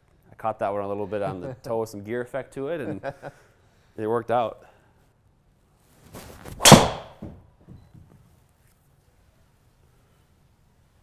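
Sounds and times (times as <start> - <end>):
golf club swish: 6.1 - 7.2
golf club cracking ball: 6.6 - 7.2.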